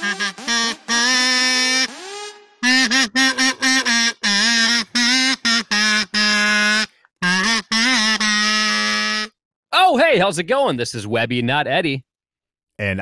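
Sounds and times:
duck call quacking: 0.0 - 1.9, 2.6 - 9.3.

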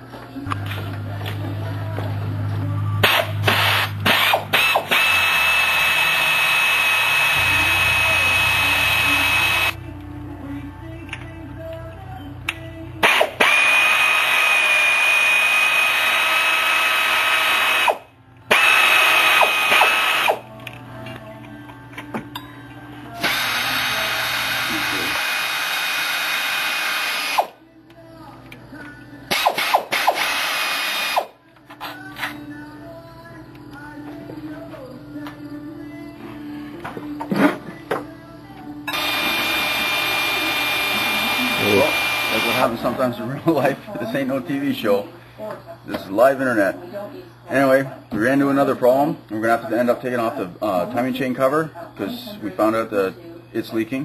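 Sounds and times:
power tool whining: 3.0 - 9.8, 13.0 - 20.5, 23.2 - 27.6, 29.3 - 31.3, 38.9 - 42.8.

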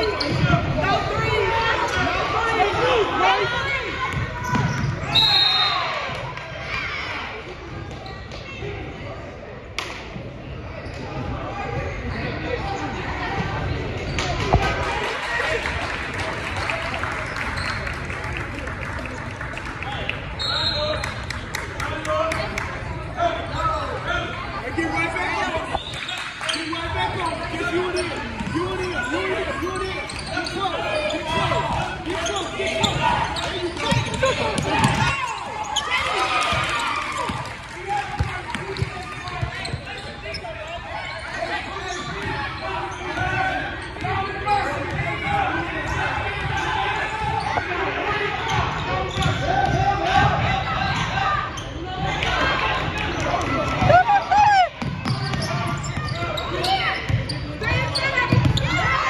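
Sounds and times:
voices and shouts: 0.0 - 9.4, 19.9 - 59.0.

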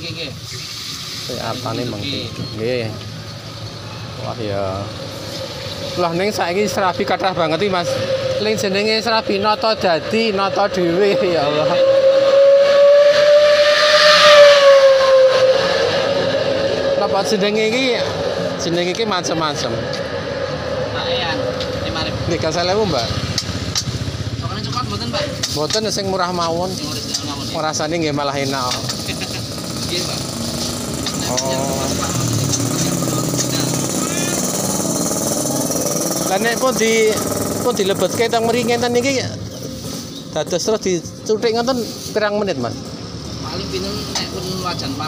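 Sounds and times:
traffic noise: 0.0 - 45.0
hiss: 0.1 - 2.2
voices: 1.2 - 45.0
steam-like whistle: 5.9 - 18.8
motorcycle engine running: 16.2 - 39.8.

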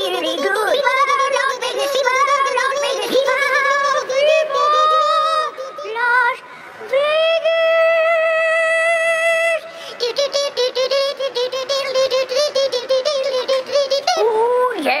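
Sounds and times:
man singing in a high voice: 0.0 - 14.8.

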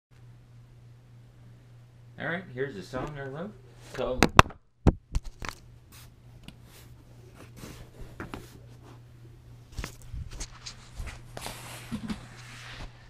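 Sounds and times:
steady low hum: 0.2 - 13.0.

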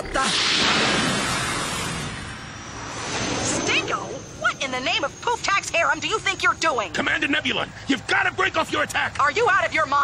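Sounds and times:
cartoon spaceship whoosh: 0.0 - 4.6.

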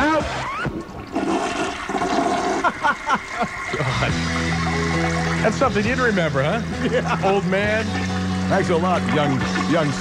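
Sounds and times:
toilet flushing: 0.0 - 10.0
short falling gurgles: 0.5 - 5.4.

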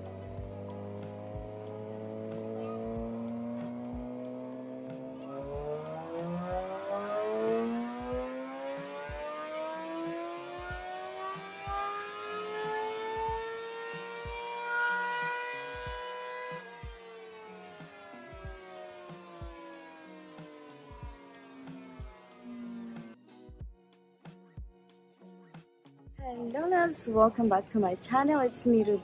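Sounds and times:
motorcycle engine revving: 0.0 - 23.2.

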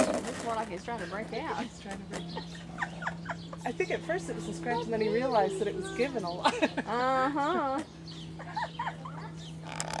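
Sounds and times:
woman laughing softly: 8.4 - 9.3.

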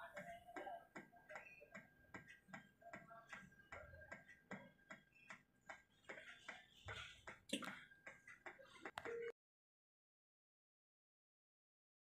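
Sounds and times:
faint regular ticking: 0.0 - 9.2.

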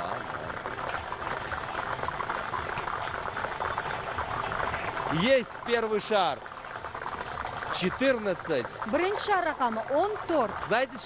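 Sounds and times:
lottery balls clattering: 0.0 - 11.0.

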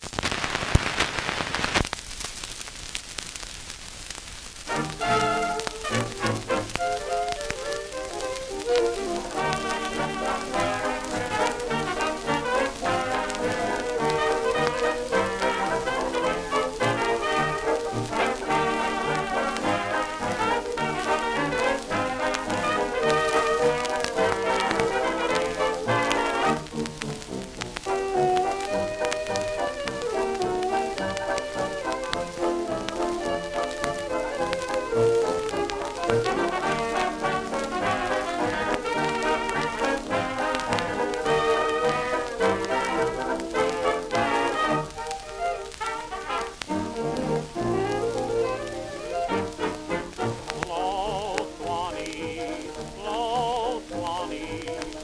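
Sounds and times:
record crackle and hiss: 0.0 - 55.0
jazz dance band playing: 4.7 - 55.0.

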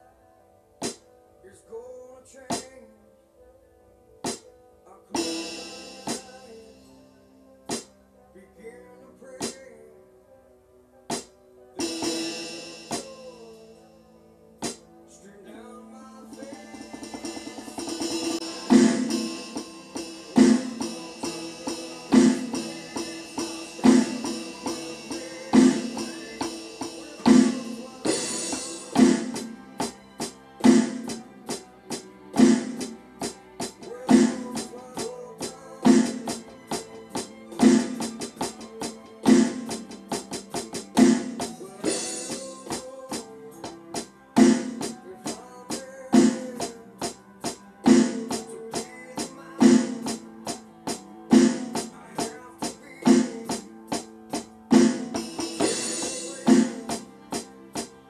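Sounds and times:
rock song with singing: 1.7 - 2.9, 5.1 - 7.0, 8.6 - 9.9, 11.8 - 13.9, 15.1 - 31.2, 32.4 - 58.0
digital drum pad hits: 17.8 - 29.5.

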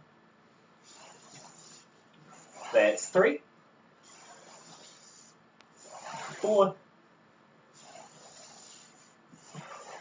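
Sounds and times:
person breathing: 7.8 - 10.0.

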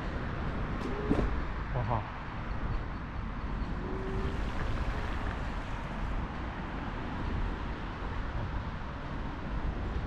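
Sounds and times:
city traffic noise: 0.0 - 10.0
wind rumble on microphone: 0.0 - 10.0.

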